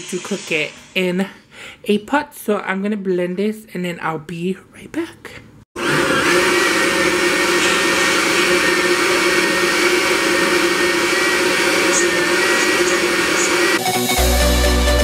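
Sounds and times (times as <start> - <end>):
blender running: 5.8 - 14.6.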